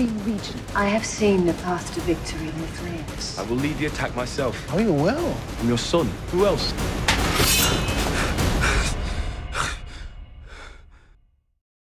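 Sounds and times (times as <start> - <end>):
low rumble: 0.0 - 11.1.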